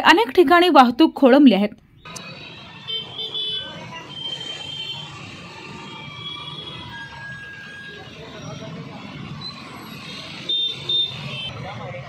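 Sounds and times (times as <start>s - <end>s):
car horn toots: 2.1s - 5.0s
vehicle engines running: 2.1s - 12.0s.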